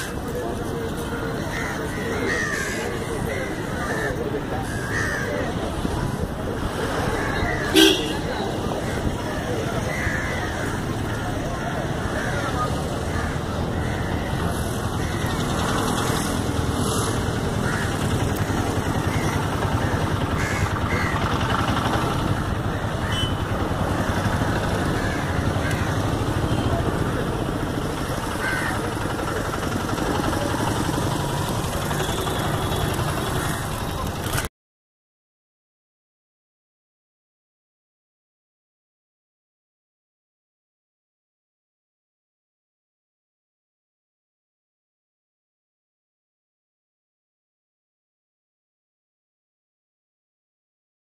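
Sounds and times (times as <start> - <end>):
road traffic: 0.0 - 34.5.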